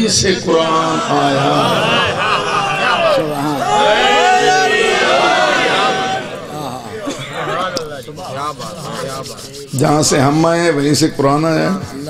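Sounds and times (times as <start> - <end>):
man speaking: 0.0 - 4.8.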